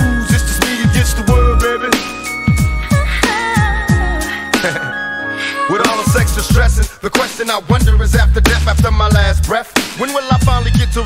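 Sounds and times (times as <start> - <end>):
rapping over a beat: 0.0 - 2.3, 2.9 - 4.9, 5.6 - 11.0
deep bass and drum hits: 6.1 - 9.5.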